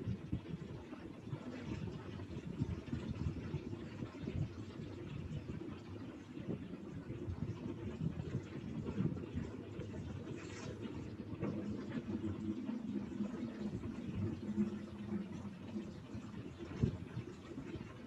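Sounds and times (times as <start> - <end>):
low rumble of background noise: 0.0 - 18.0.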